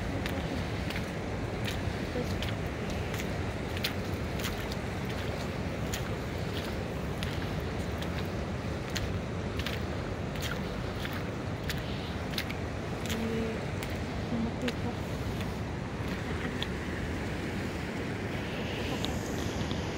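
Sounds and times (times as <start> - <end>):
fast-flowing river rushing: 0.0 - 19.9.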